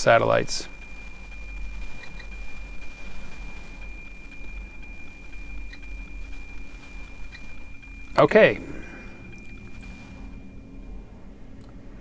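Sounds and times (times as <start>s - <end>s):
faint static: 0.0s - 12.0s
steady high radio tone with ticking beat: 0.0s - 12.0s.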